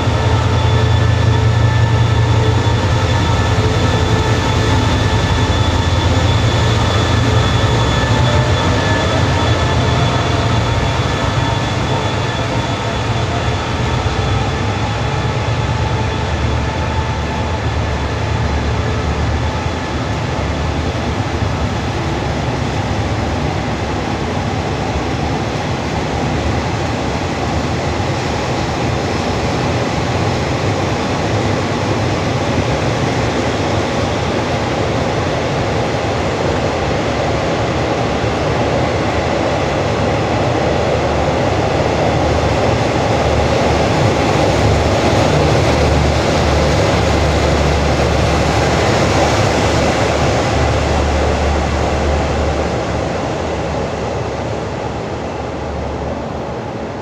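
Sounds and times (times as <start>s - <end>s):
train coaches rumbling on rails: 0.0s - 57.0s.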